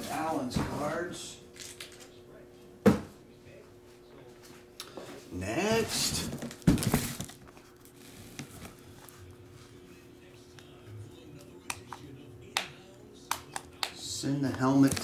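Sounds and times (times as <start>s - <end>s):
box rustle and knock: 6.0s - 7.4s.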